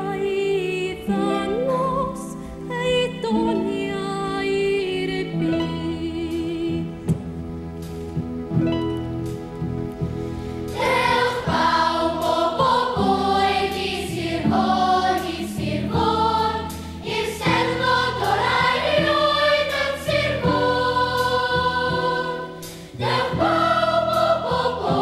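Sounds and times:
instrumental accompaniment: 1.0 - 25.0
children's choir singing: 10.7 - 25.0.

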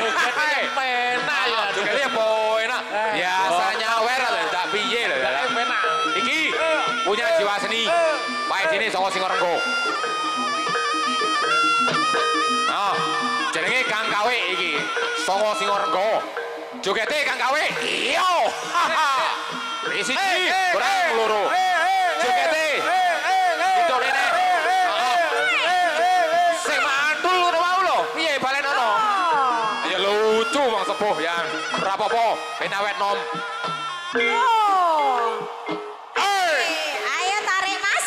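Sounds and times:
man shouting: 0.0 - 9.7, 12.7 - 16.3, 17.3 - 33.3, 36.2 - 37.0
man calling out loudly: 0.0 - 9.8, 12.7 - 16.3, 16.9 - 33.3
reedy wind instrument melody: 0.0 - 38.0.

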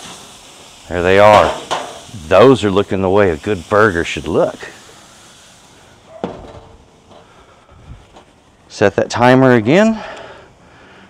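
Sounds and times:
grill lid metal clunk: 1.3 - 2.0, 6.2 - 7.2.

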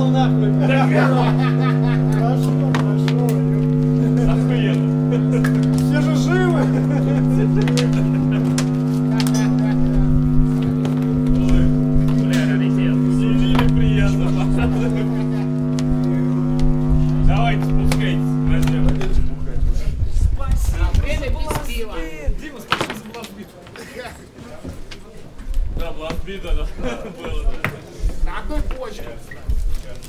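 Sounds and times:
amplified guitar and bass drone: 0.0 - 22.4.

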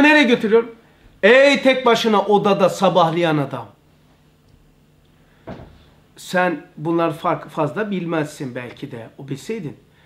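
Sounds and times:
short knock: 5.4 - 5.9.

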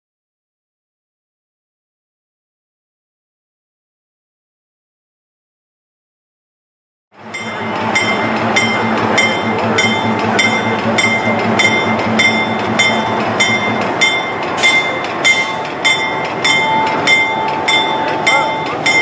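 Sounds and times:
locomotive bell ringing: 7.2 - 19.0
locomotive engine running: 7.2 - 19.0.

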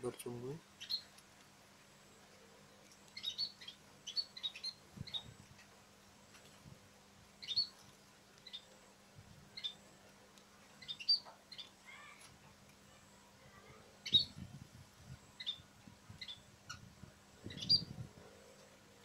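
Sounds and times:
birds chirping: 0.0 - 1.2, 1.9 - 5.4, 7.4 - 8.9, 9.5 - 9.9, 10.7 - 12.2, 13.5 - 14.4, 15.1 - 18.8.

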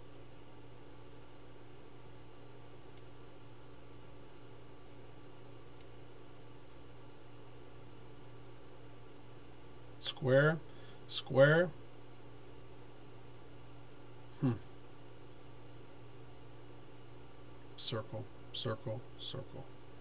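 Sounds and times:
computer hum and hiss: 0.0 - 20.0.

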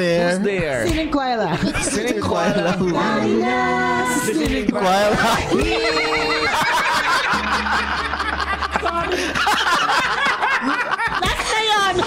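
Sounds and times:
people laughing together: 1.5 - 3.4, 4.1 - 12.0
high-pitched pulsing laugh: 5.1 - 11.2.

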